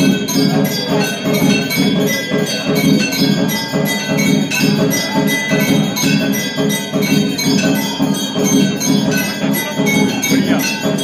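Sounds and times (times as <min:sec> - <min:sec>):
brass bells ringing: 0:00.0 - 0:11.0.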